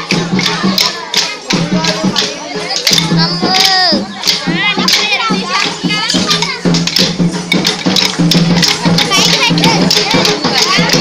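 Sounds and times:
children singing: 0:00.0 - 0:11.0
dance sticks clicking together: 0:00.4 - 0:11.0.

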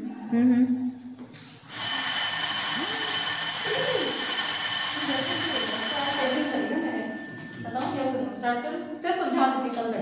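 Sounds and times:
high-pitched ringing: 0:01.7 - 0:08.9.

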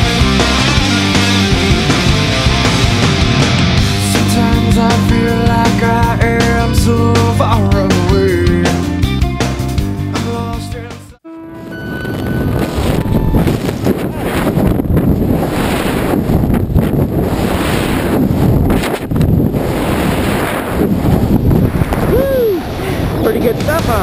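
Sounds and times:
rock music: 0:00.0 - 0:12.6
wind rushing over microphone: 0:11.5 - 0:24.0.

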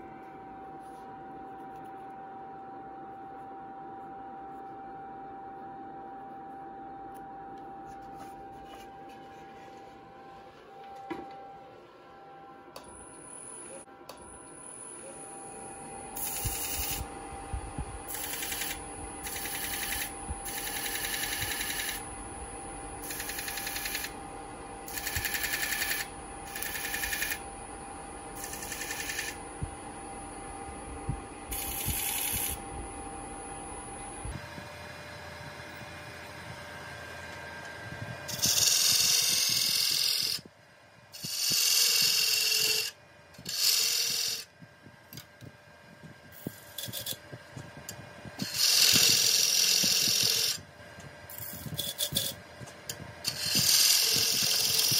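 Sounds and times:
pencil scratching on spinning wood: 0:18.1 - 0:22.0, 0:23.1 - 0:24.1, 0:24.9 - 0:27.4, 0:28.4 - 0:29.4, 0:48.4 - 0:50.6, 0:51.3 - 0:52.4, 0:53.2 - 0:54.9
wood lathe running: 0:18.1 - 0:22.0, 0:23.0 - 0:24.2, 0:24.9 - 0:27.4, 0:28.3 - 0:29.4, 0:31.5 - 0:32.6, 0:38.3 - 0:40.4, 0:41.2 - 0:44.4, 0:48.4 - 0:50.6, 0:53.2 - 0:54.9.

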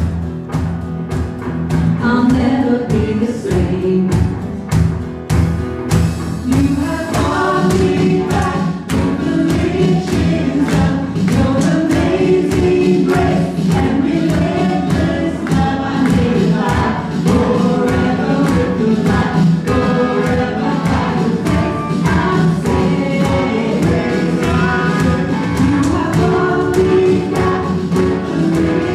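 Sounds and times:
acoustic guitar: 0:00.0 - 0:28.9
keyboard: 0:00.0 - 0:28.9
steady beat: 0:03.7 - 0:28.9
voices singing together: 0:06.4 - 0:28.9.

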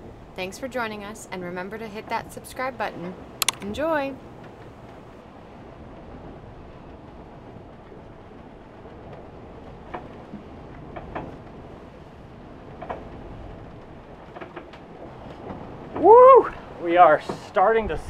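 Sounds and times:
hull and rigging rumbling in waves: 0:00.0 - 0:18.0
boat creaks and clicks: 0:03.1 - 0:05.1, 0:08.8 - 0:11.7, 0:12.7 - 0:16.1.

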